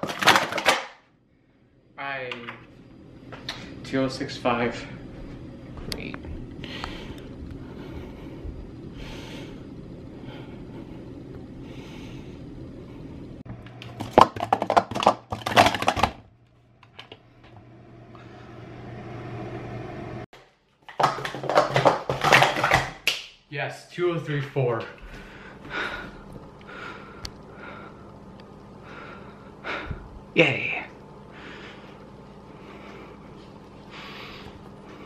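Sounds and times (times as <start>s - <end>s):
plastic cups clattering: 0.0s - 1.0s, 13.8s - 16.2s, 20.8s - 23.0s
steady low hum: 1.1s - 20.3s, 23.4s - 35.0s.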